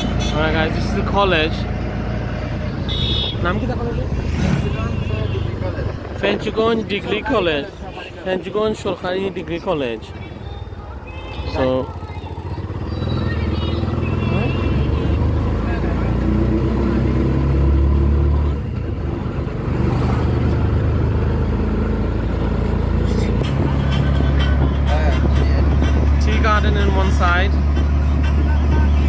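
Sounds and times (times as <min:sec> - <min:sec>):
road and wind noise: 0:00.0 - 0:29.0
vehicle engine drone: 0:00.0 - 0:29.0.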